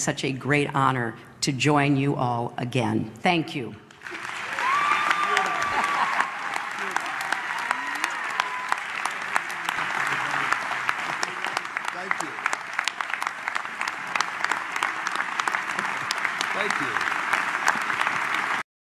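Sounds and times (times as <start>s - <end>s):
audience applauding: 3.9s - 18.6s.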